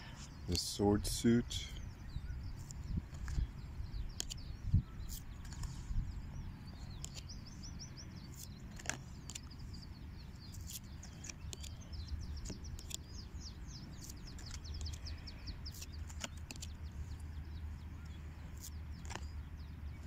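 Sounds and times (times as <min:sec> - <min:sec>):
birds chirping: 0:00.0 - 0:20.0
steady low rumble: 0:00.0 - 0:20.0.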